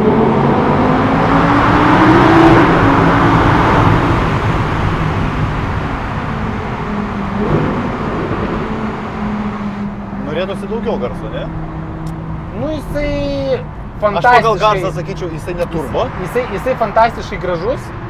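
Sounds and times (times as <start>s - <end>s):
car engine accelerating: 0.0s - 18.0s.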